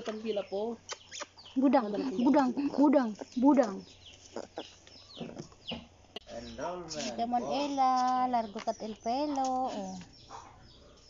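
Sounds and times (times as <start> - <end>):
high-pitched animal calls: 0.1 - 5.9.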